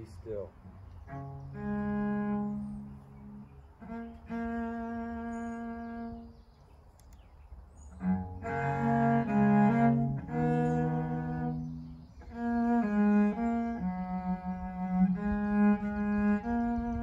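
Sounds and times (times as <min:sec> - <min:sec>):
bowed cello melody: 0:00.0 - 0:06.7, 0:07.8 - 0:17.0.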